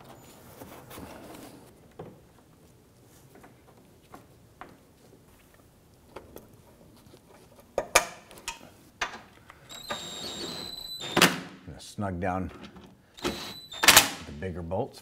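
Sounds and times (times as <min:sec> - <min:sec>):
cordless power tool running: 0:13.2 - 0:14.0.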